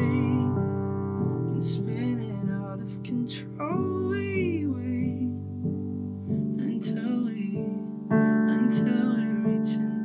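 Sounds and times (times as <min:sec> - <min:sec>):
man singing: 0:00.0 - 0:10.0.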